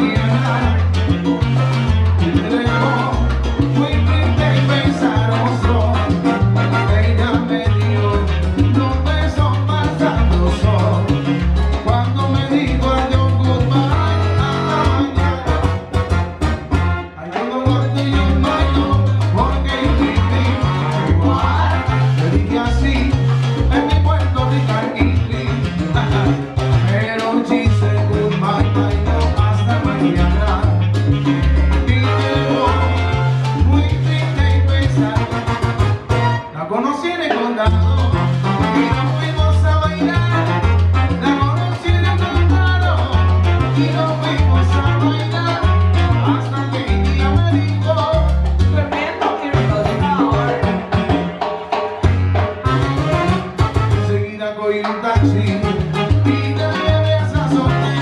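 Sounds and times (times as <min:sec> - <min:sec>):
stepping bass line: 0:00.0 - 0:36.5, 0:37.7 - 0:48.9, 0:49.6 - 0:51.4, 0:52.0 - 0:54.2, 0:55.2 - 0:58.0
salsa band through speakers: 0:00.0 - 0:58.0.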